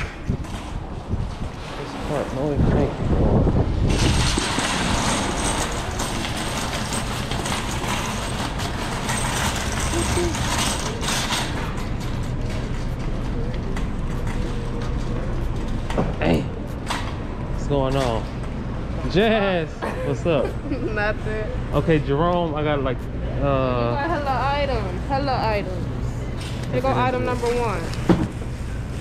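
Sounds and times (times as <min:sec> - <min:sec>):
background noise rush: 0:00.0 - 0:29.0
shopping cart rattling: 0:03.9 - 0:15.9.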